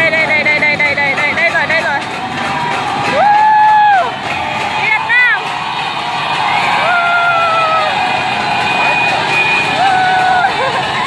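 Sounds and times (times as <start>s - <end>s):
crowd cheering: 0.0s - 11.0s
motorbike engines and traffic: 0.0s - 11.0s
long held shouts: 9.5s - 10.8s.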